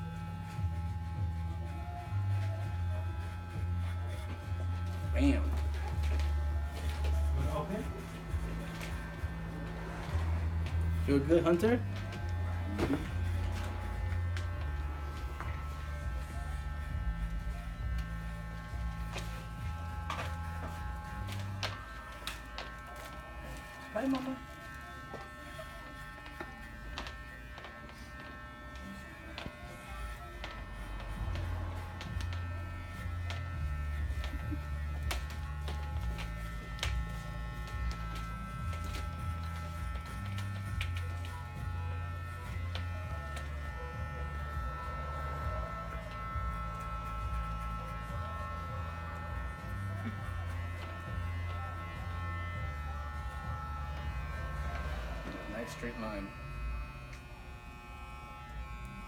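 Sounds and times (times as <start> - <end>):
electric hair clippers buzzing: 0.0 - 59.0.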